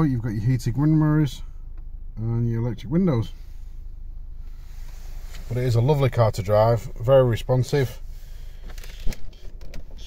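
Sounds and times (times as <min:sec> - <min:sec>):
low hum in car cabin: 0:00.0 - 0:10.0.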